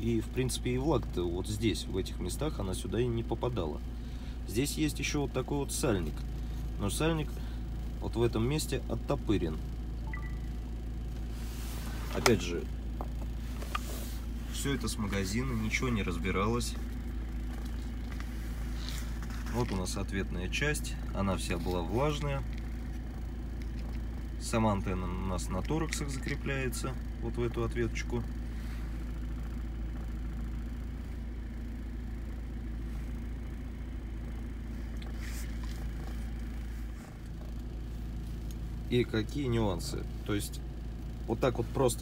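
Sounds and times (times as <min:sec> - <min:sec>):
car engine idling: 0:00.0 - 0:42.0
faint handling rustle: 0:11.0 - 0:26.9, 0:34.2 - 0:38.9.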